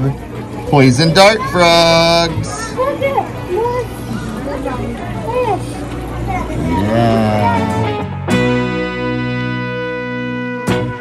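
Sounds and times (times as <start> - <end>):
children chattering: 0.0 - 9.7.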